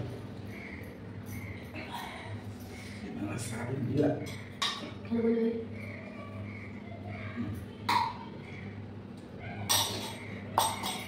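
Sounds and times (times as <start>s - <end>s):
spoon clinking against steel bowl: 9.7s - 11.0s.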